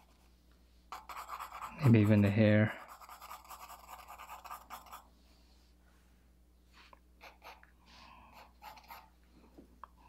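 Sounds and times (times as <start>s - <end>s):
pencil shading on paper: 0.9s - 5.1s, 7.2s - 7.6s, 8.3s - 9.1s.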